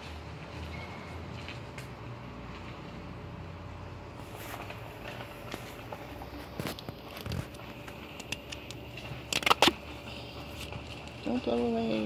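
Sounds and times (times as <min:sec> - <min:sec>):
duct tape ripping off roll: 0:09.3 - 0:09.8.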